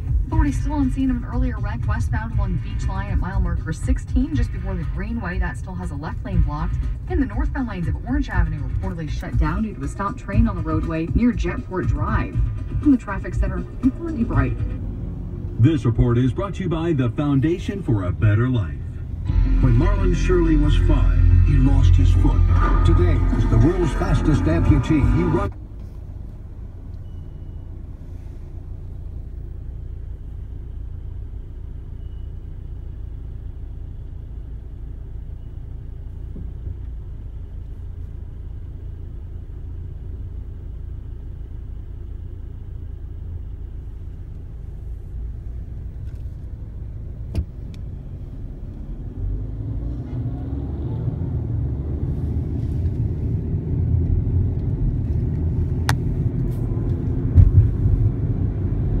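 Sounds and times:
car engine rumble: 0:00.0 - 0:59.0
road noise: 0:00.0 - 0:59.0.

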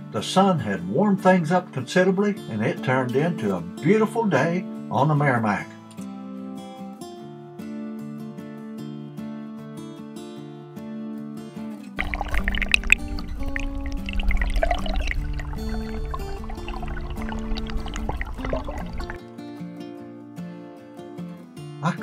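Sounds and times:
acoustic guitar music: 0:00.0 - 0:22.0
river water rushing underwater: 0:12.0 - 0:19.2.

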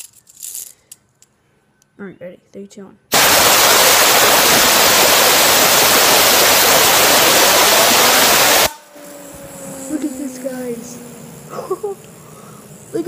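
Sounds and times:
compressed air hissing: 0:03.1 - 0:13.0
spinner bearing whirring: 0:04.3 - 0:13.0.

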